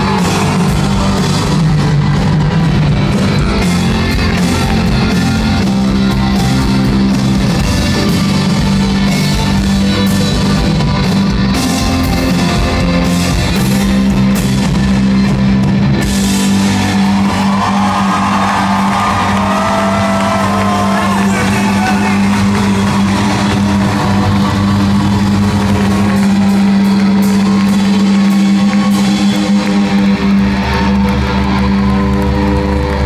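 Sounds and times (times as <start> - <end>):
live rock band playing: 0.0 - 33.0.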